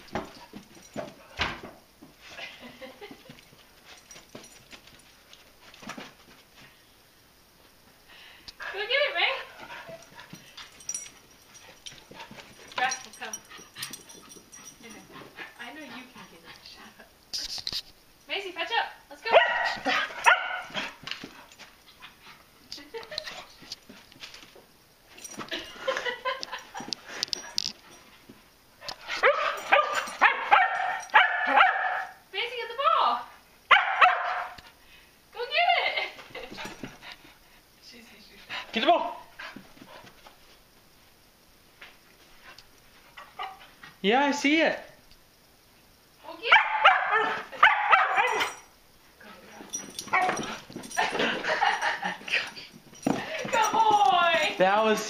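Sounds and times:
dog barking: 19.3 - 20.8, 29.2 - 32.2, 33.7 - 34.6, 46.5 - 48.7.

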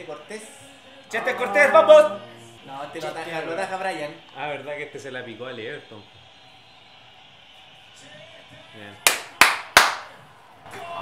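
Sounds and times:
sharp hand claps: 9.0 - 10.2.

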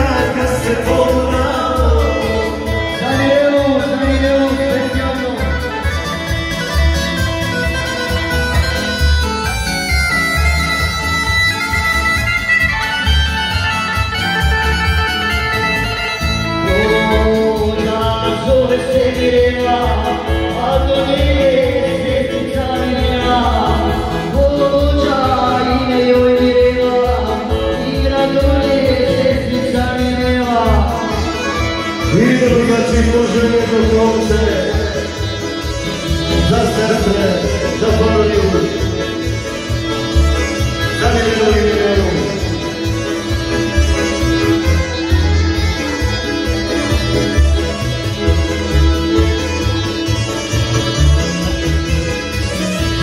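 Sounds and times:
live band dance music: 0.0 - 53.0
reedy melody: 0.0 - 53.0.

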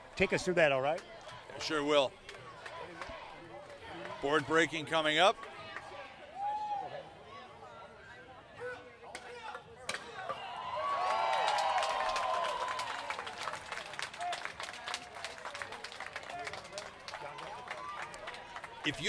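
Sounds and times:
crowd clapping: 10.7 - 19.0.

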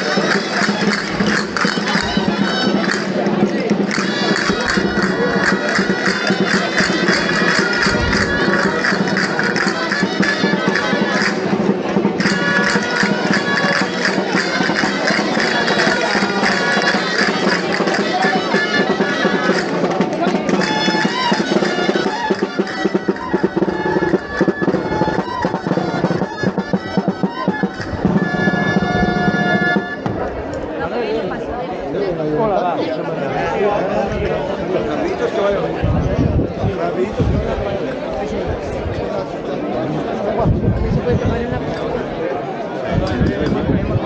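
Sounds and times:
drum playing: 0.0 - 30.6
shawm melody: 0.0 - 31.2
crowd chatter: 0.0 - 44.0.

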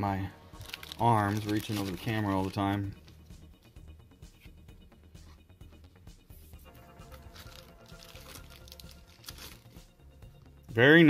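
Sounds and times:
faint background music: 0.0 - 11.0
trading cards and sleeves rustling: 0.1 - 3.5, 6.5 - 9.9.

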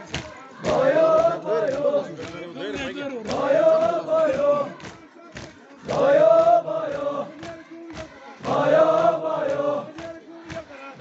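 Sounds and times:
hands slapping chests: 0.0 - 2.5, 3.2 - 11.0
men chanting in unison: 0.0 - 11.0.

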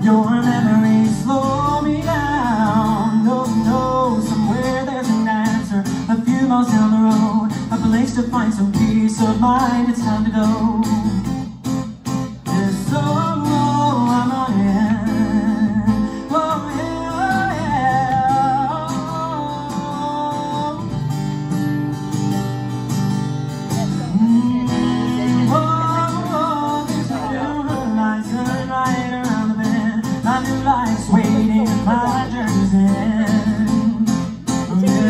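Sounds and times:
acoustic guitar strumming: 0.0 - 35.0.

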